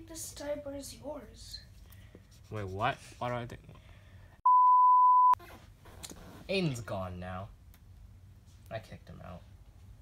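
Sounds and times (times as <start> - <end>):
high-pitched censor bleep: 4.4 - 5.4.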